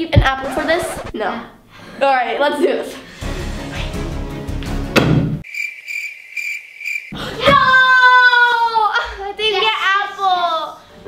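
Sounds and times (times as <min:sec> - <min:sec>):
dart hitting board: 0:05.0 - 0:05.4
crickets sound effect: 0:05.4 - 0:07.2.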